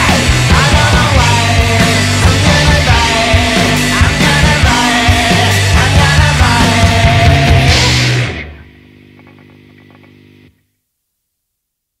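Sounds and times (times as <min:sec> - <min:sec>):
hard rock song final hit: 0:00.0 - 0:08.5.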